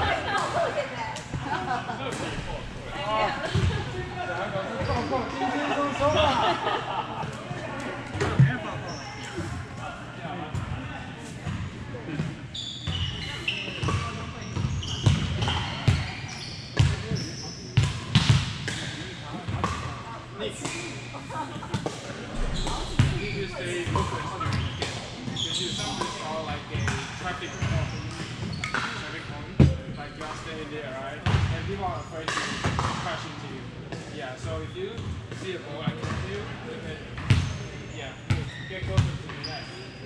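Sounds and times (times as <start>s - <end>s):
shoe squeaks: 4.8s - 5.4s, 12.5s - 17.8s, 22.3s - 30.7s, 37.4s - 40.0s
volleyballs hit and bouncing: 26.8s - 30.4s, 32.3s - 33.1s.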